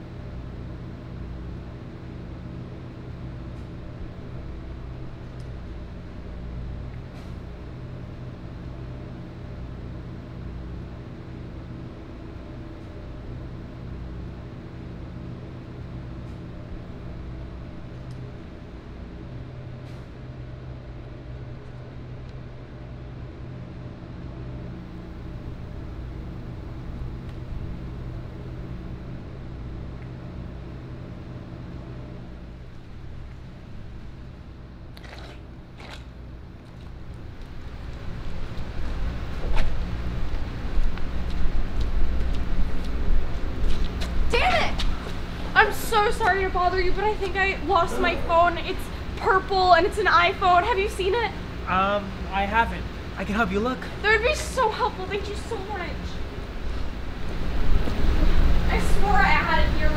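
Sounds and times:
train low hum: 0.0 - 59.9.

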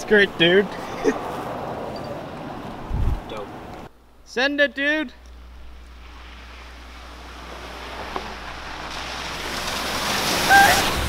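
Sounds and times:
tyres on wet gravel road: 0.0 - 4.2, 5.0 - 11.0
hissing water spray: 5.8 - 11.0.

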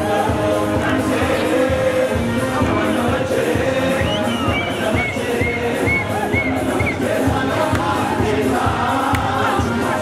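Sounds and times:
crowd singing along: 0.0 - 10.0
live dance music with keyboard: 0.0 - 10.0
man singing into microphone: 0.0 - 10.0.

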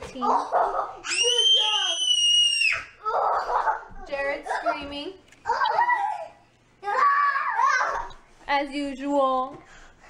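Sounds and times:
young child screaming: 1.0 - 3.4, 5.6 - 8.2.

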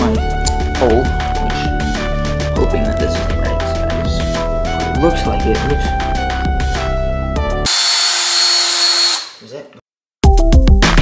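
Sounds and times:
background music: 0.0 - 7.7, 10.2 - 11.0
cordless drill whirring: 7.7 - 9.4.

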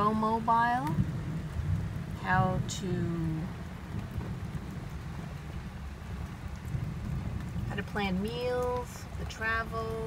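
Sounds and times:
heavy rain on vehicle roof: 0.0 - 10.0.

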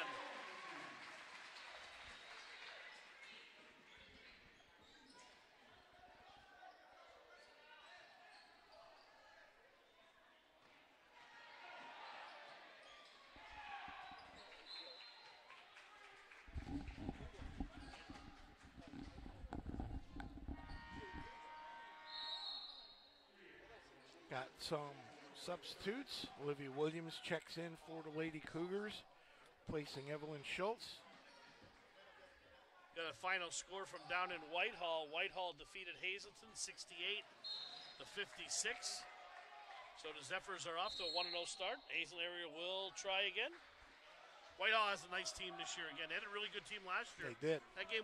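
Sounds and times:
faint crowd voices: 1.8 - 48.0.

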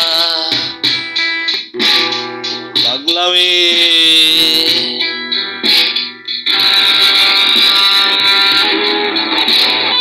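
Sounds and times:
distorted electric guitar: 0.0 - 10.0.

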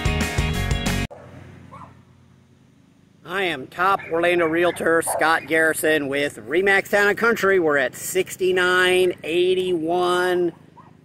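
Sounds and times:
faint dog bark: 1.1 - 2.1, 4.0 - 5.6, 10.5 - 11.0.

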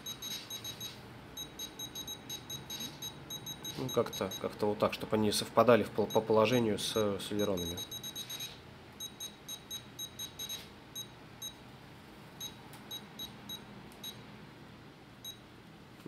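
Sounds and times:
short high transmitter beeps: 0.0 - 4.5, 6.9 - 11.6.

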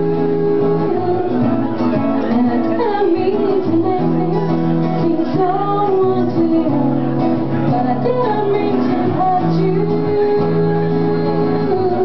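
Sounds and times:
acoustic guitar: 0.0 - 12.0
woman singing: 0.0 - 12.0.

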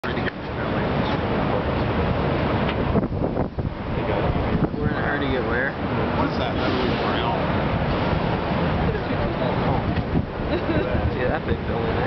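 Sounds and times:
wind blowing across microphone: 0.0 - 12.0.

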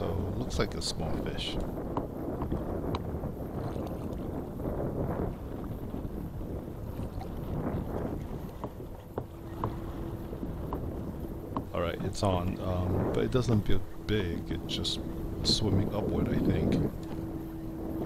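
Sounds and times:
wind buffeting microphone: 0.0 - 18.0
water slapping against kayak hull: 0.5 - 18.0.

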